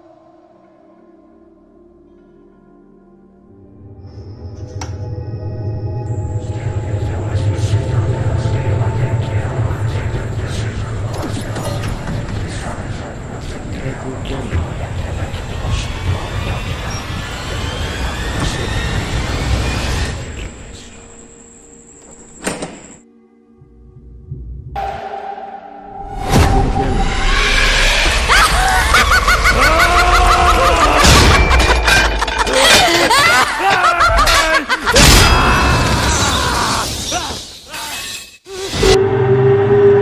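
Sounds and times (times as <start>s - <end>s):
eerie laugh: 27.9s - 36.9s.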